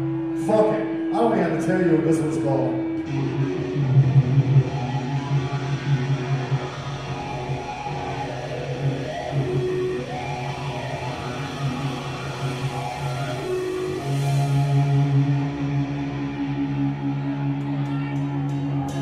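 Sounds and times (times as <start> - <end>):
bass guitar low notes: 0.0 - 19.0
electric guitar held notes: 0.0 - 19.0.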